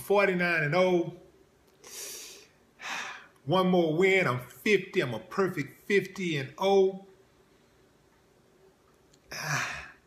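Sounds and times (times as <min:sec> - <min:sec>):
man speaking: 0:00.0 - 0:01.3, 0:03.4 - 0:07.1
sharp intake of breath: 0:01.8 - 0:03.3
man breathing: 0:01.8 - 0:03.4.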